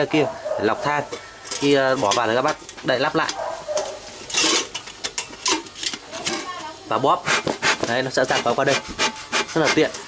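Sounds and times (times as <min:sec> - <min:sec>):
metal lid scraping shut: 0:04.3 - 0:04.8.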